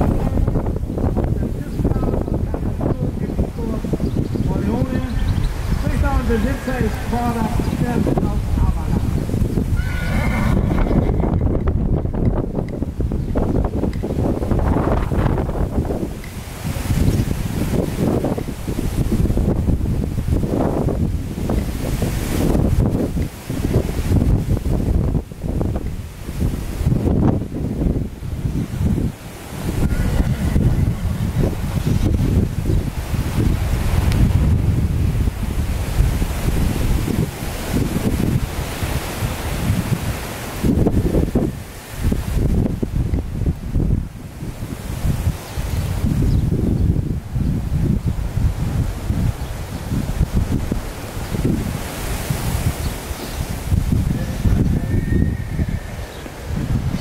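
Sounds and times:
wind on microphone: 0:00.0 - 0:57.0
horse whinnying: 0:09.7 - 0:11.7, 0:29.8 - 0:31.1, 0:54.6 - 0:56.4.

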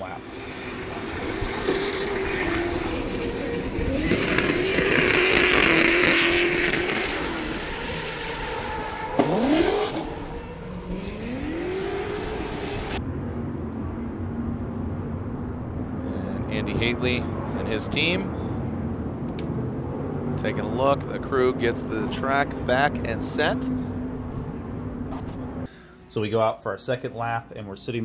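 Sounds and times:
car engine revving: 0:00.0 - 0:13.0, 0:13.8 - 0:25.7.

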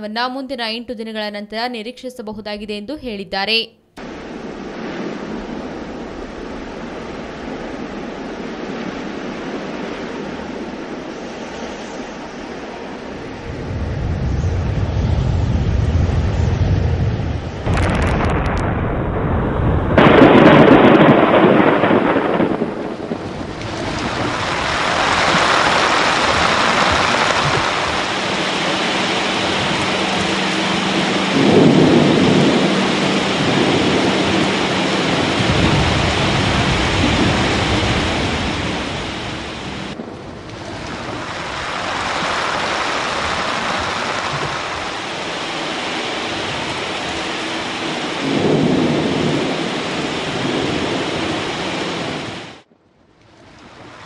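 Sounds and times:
heavy rain: 0:04.0 - 0:54.0
rolling thunder: 0:04.0 - 0:54.0.

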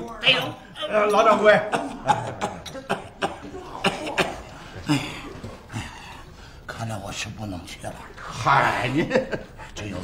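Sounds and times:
man coughing: 0:01.4 - 0:05.5.

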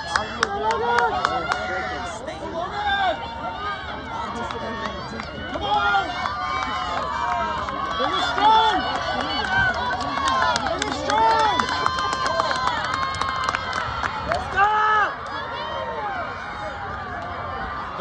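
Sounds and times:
spectators shouting and cheering: 0:00.0 - 0:18.0.

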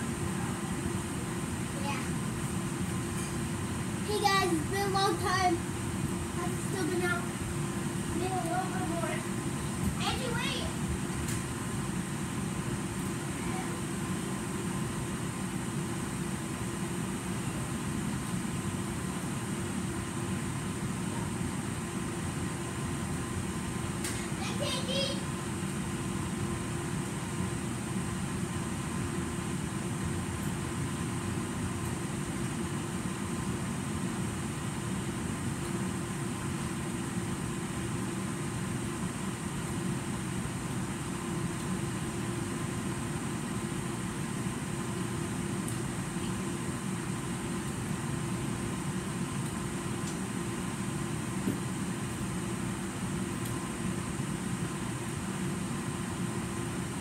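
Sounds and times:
faint steady hum: 0:00.0 - 0:57.0
ventilation system drone: 0:00.0 - 0:57.0.

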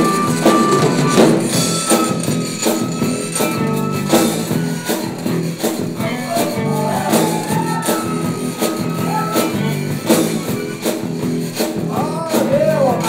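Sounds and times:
rubboard scraped in rhythm: 0:00.0 - 0:13.0
zydeco band playing: 0:00.0 - 0:13.0.

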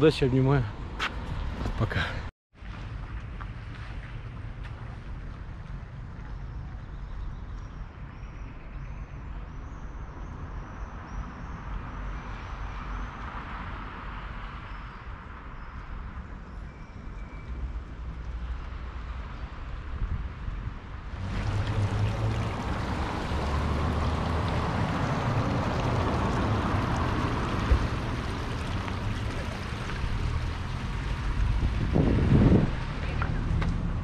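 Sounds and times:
wind rumbling on microphone: 0:02.6 - 0:34.0.

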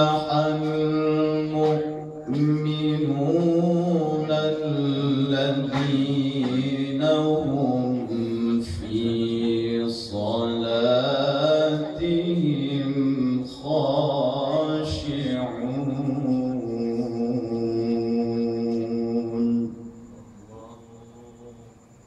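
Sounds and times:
man reciting melodically: 0:00.0 - 0:22.0.

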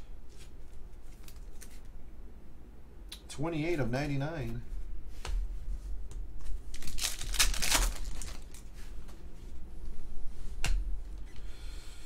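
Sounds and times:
wrapper and cards rustling: 0:06.4 - 0:09.0
foil pack tearing open: 0:06.7 - 0:08.6.

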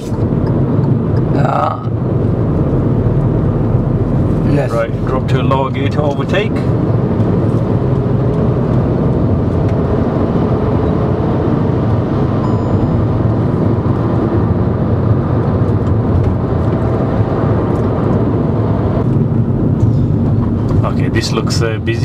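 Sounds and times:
car engine humming: 0:00.0 - 0:22.0
road noise: 0:00.0 - 0:22.0.

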